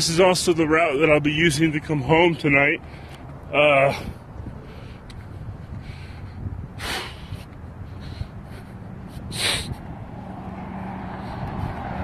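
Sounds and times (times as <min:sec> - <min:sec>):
cars approaching on road: 0:00.0 - 0:12.0.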